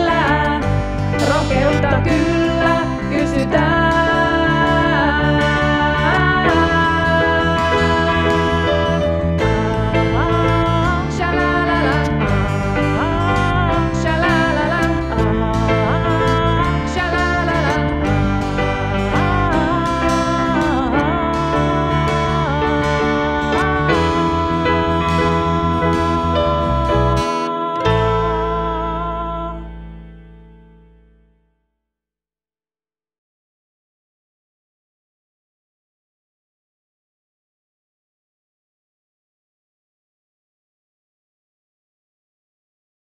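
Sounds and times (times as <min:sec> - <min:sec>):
band music: 0:00.0 - 0:30.0
sliding guitar lead notes: 0:00.0 - 0:31.3.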